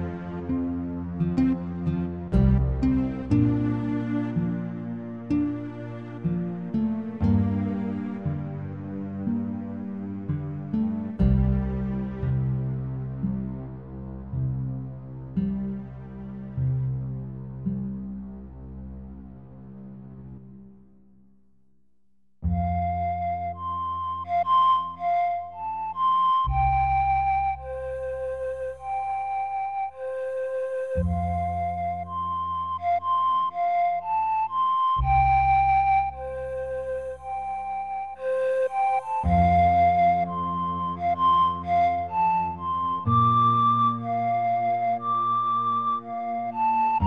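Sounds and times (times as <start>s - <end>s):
flute lullaby: 0.0s - 13.7s, 22.4s - 47.0s
soft guitar accompaniment: 0.0s - 14.6s
sustained low accompaniment: 0.0s - 21.1s, 22.4s - 47.0s.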